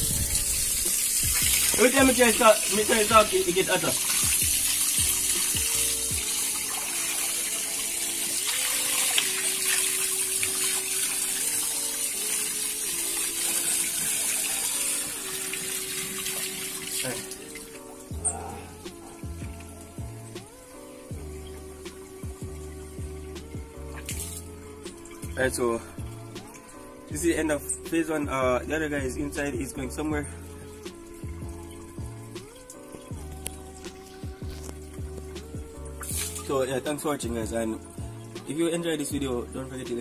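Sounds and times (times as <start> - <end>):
slow background music: 0.0 - 40.0
water running from a tap: 0.0 - 40.0.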